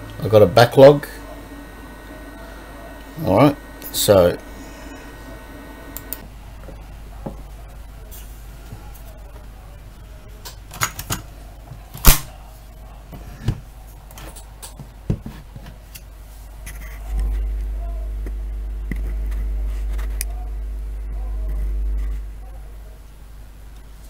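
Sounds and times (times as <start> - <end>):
tape deck hum with buzz: 0.0 - 24.0.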